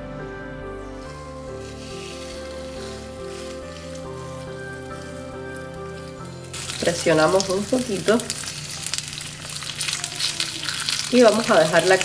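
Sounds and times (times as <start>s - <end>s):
background music: 0.0s - 12.0s
fish sizzling on grill pan: 1.0s - 12.0s.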